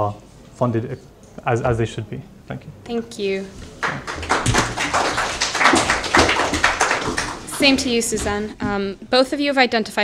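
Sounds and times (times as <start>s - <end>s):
audience applauding: 3.6s - 8.3s.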